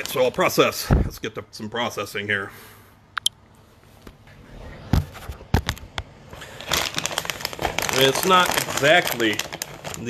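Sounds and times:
plastic bag crackling: 0.0 - 0.8, 6.4 - 10.0.

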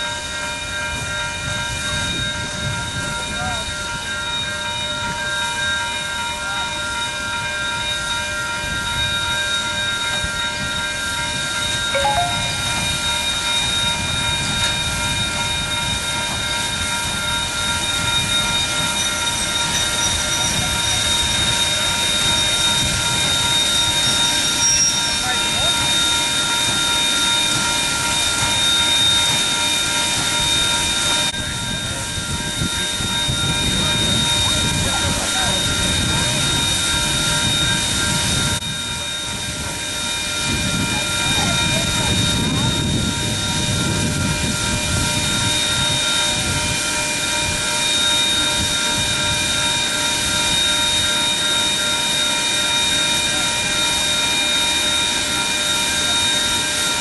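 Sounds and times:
steady high whining tones: 0.0 - 57.0
murmur of crowd chatter: 12.0 - 12.9, 31.5 - 38.4, 40.5 - 43.2.

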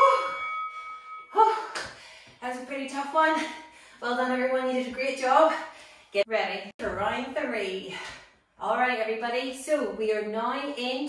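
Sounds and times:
bell-like timer chime: 0.0 - 1.7.

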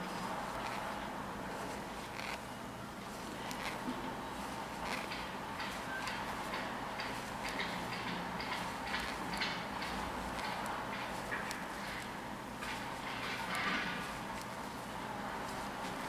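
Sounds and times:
metal knitting needles clicking: 2.1 - 2.4, 3.5 - 3.8, 4.8 - 13.7.

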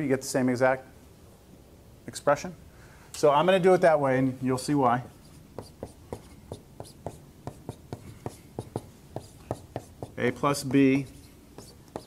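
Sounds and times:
marker writing on whiteboard: 4.9 - 12.0.

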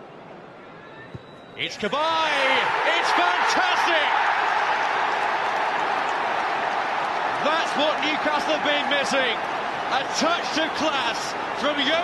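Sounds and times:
stadium crowd cheering and applauding: 1.6 - 12.0.

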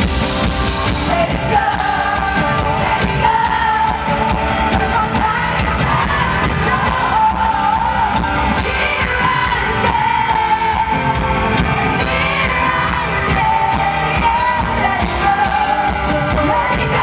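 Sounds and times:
live band playing: 0.0 - 17.0
woman singing into a microphone: 0.9 - 17.0.

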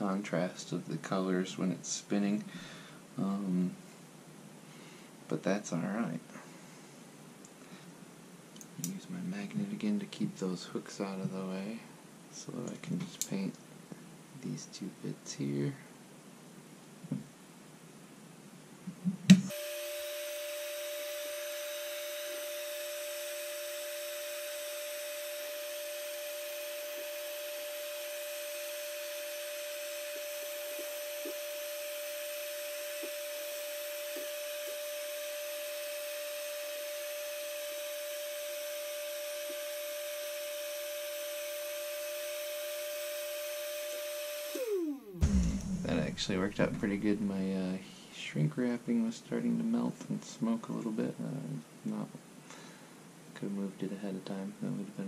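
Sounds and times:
heat gun fan whine: 19.4 - 47.5.

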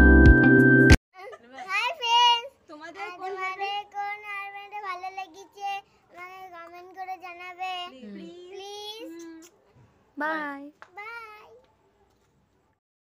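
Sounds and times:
young girl singing: 3.0 - 9.5, 10.3 - 11.6.

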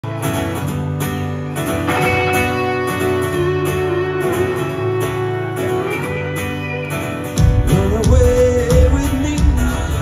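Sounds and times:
electric guitar: 0.0 - 10.0
live band playing: 0.0 - 10.0
strummed acoustic guitar: 0.0 - 10.0.

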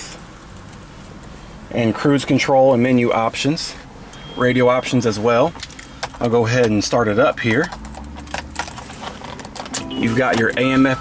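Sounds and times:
car keys jangling: 5.5 - 6.8, 7.4 - 10.8.

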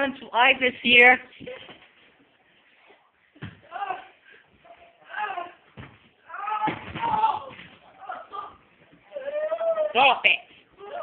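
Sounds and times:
scuffle: 1.3 - 11.0
high-pitched voice crying out: 9.1 - 10.0.

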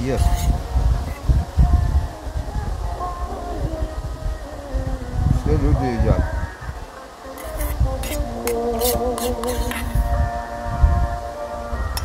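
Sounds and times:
music with wavering held notes: 0.0 - 12.0.

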